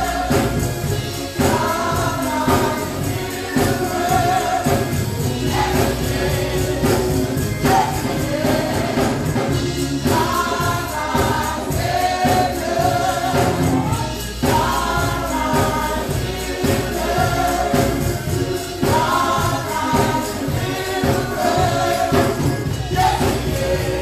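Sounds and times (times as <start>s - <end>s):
choir singing gospel: 0.0s - 24.0s
steady beat: 0.0s - 24.0s
tambourine: 0.0s - 24.0s.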